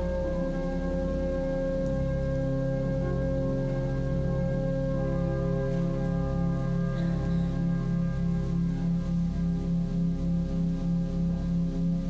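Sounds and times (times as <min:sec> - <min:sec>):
church organ playing held chords: 0:00.0 - 0:12.0.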